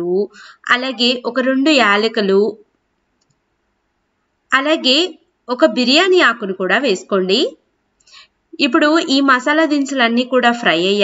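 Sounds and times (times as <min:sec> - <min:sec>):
woman speaking: 0:00.0 - 0:02.7, 0:04.5 - 0:07.6, 0:08.6 - 0:11.0.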